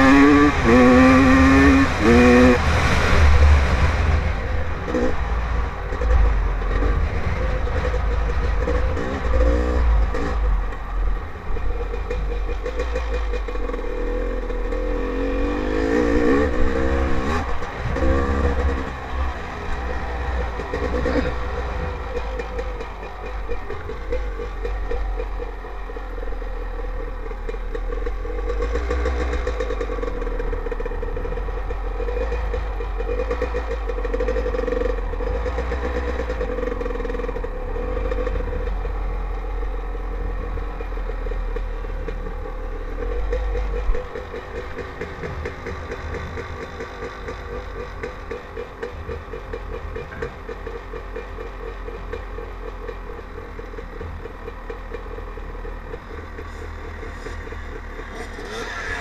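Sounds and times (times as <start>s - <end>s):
heavy low rumble: 0.0s - 33.2s
dirt bike engine running: 0.0s - 59.0s.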